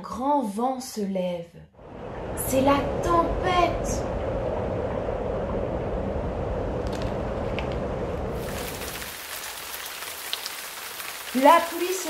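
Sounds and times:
rushing wind: 1.8 - 9.2
heavy rain hissing: 8.3 - 12.0.

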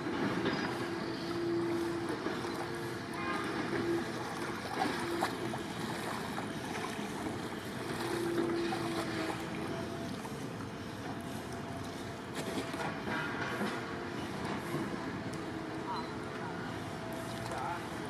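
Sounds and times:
paddle splashing in water: 2.2 - 11.2.

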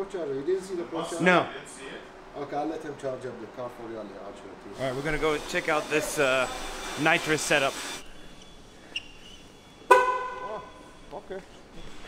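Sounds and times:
short horn toot: 9.9 - 10.9.

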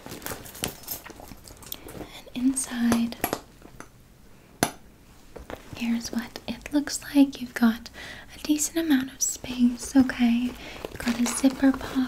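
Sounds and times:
leather crinkling: 0.0 - 2.1, 9.4 - 12.0.

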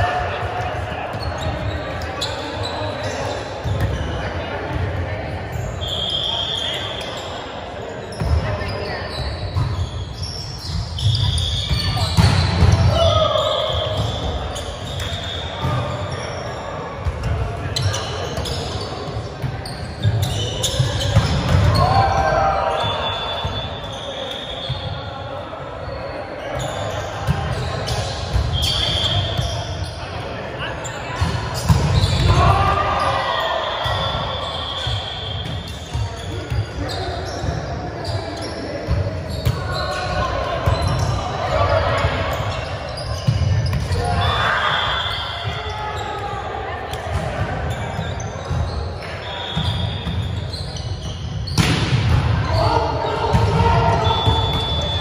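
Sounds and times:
players calling out: 0.0 - 55.0
sneakers squeaking on floor: 0.0 - 55.0.

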